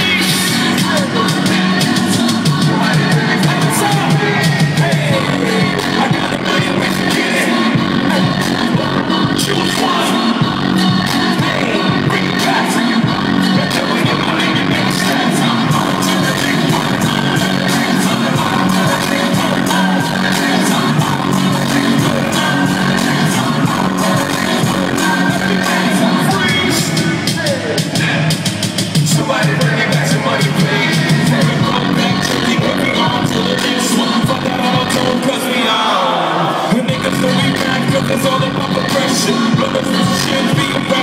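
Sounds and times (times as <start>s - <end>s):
loud live concert music: 0.0s - 41.0s.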